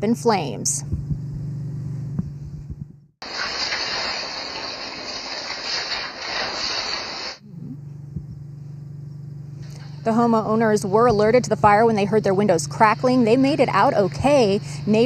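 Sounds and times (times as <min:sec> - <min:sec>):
steady low hum: 0:00.0 - 0:15.0
fire crackling and hissing: 0:03.2 - 0:07.4.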